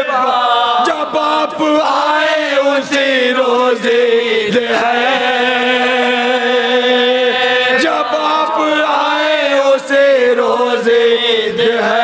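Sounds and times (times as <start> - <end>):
men chanting in unison: 0.0 - 12.0.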